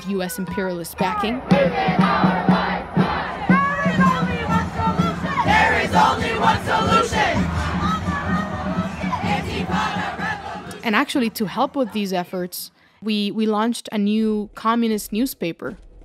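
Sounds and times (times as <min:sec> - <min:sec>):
crowd shouting together: 0:01.4 - 0:10.8.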